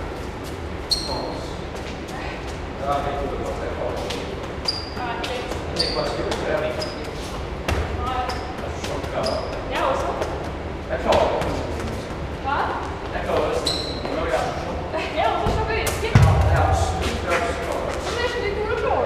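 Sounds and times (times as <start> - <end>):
football thudding on foot and concrete: 4.4 - 9.2, 15.4 - 17.0.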